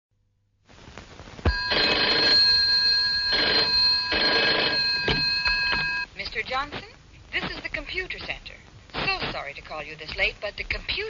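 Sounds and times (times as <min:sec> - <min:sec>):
steady high ringing tone: 0:01.5 - 0:06.1
telephone bell ringing: 0:01.5 - 0:06.1.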